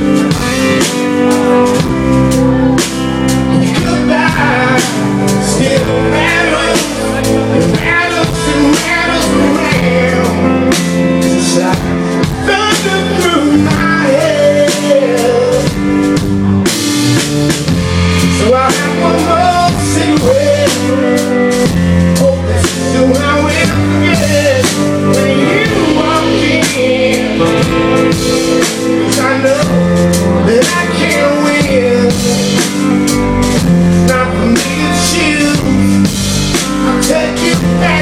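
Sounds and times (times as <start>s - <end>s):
drum kit with bass drum: 0.0s - 38.0s
electric guitar chords: 0.0s - 38.0s.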